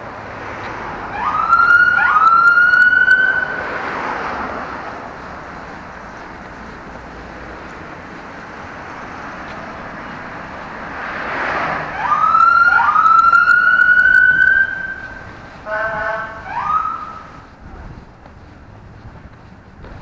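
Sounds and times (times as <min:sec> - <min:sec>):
passing traffic: 0:00.0 - 0:20.0
siren whooping and wailing: 0:01.0 - 0:04.2, 0:11.8 - 0:17.4
horn blast: 0:15.6 - 0:17.2.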